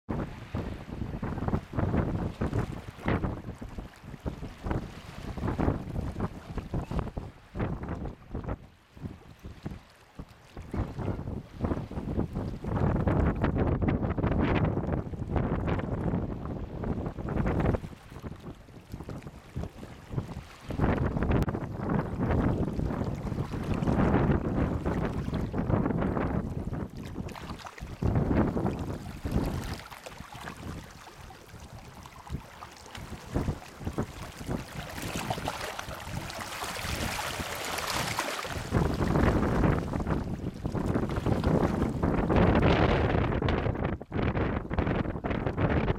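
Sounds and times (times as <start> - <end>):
wind buffeting microphone: 0.1 - 45.9
small waves washing over rocks: 1.9 - 7.1, 17.6 - 25.8, 27.0 - 42.3.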